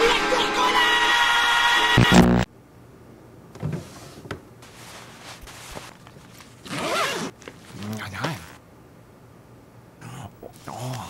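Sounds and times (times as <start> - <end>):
suitcase zipper closing: 6.6 - 8.6.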